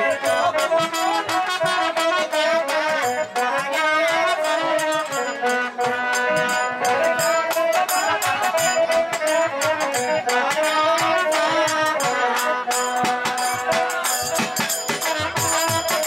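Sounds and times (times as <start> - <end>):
percussion beat: 0.0 - 16.0
trumpet melody: 0.0 - 16.0.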